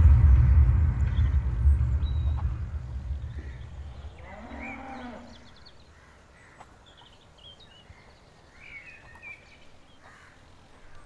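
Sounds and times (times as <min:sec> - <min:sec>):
faint bird chirps: 0:01.0 - 0:11.0
cow mooing: 0:04.2 - 0:05.5.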